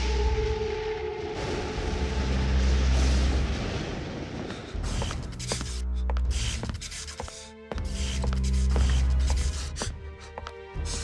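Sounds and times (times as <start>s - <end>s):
thunder rumbling: 0.8s - 5.3s.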